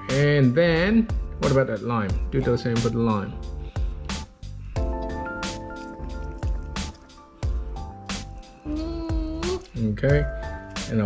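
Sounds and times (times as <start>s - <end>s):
music with held chords and beat: 0.0s - 11.0s
wet squishing dripping sound: 3.6s - 10.9s.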